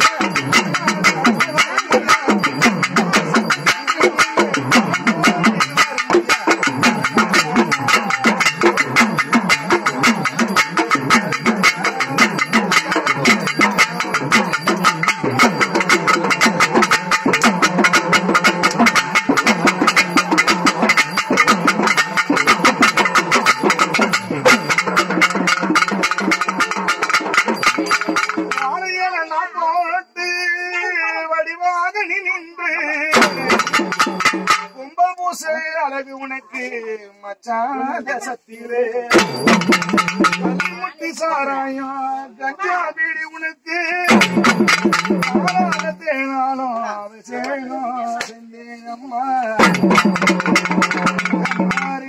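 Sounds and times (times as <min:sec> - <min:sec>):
stick-beaten drums: 0:00.0 - 0:29.2, 0:33.0 - 0:35.0, 0:39.1 - 0:41.3, 0:43.9 - 0:46.6, 0:49.4 - 0:52.0.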